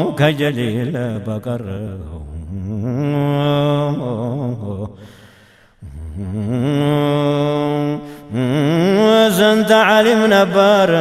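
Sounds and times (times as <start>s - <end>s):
man chanting unaccompanied: 0.0s - 5.0s, 5.8s - 11.0s.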